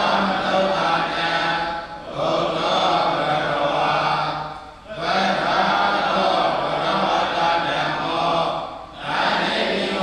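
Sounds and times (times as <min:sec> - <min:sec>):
chanting on a low pitch: 0:00.0 - 0:10.0.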